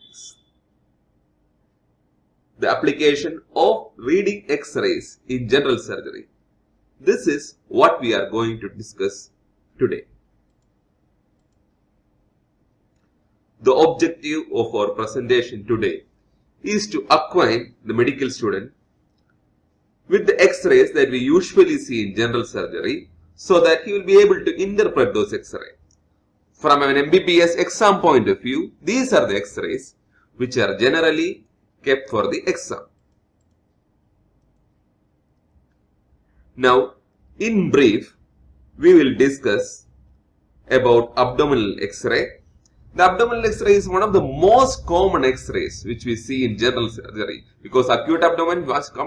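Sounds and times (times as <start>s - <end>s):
faint computer mouse clicks: 10.4s - 10.8s, 11.4s - 11.8s, 19.1s - 19.4s, 25.8s - 26.1s, 32.9s - 33.8s
faint clicks: 10.4s - 11.8s, 12.8s - 13.2s, 19.0s - 19.4s, 25.8s - 26.2s, 32.9s - 36.4s.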